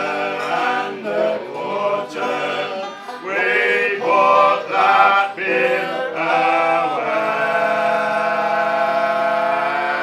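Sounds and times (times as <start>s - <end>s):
men singing in harmony: 0.0s - 10.0s.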